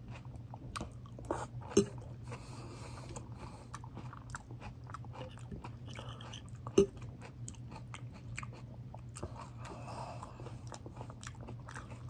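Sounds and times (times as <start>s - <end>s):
person chewing salad: 0.0s - 12.0s
steady low hum: 0.0s - 12.0s.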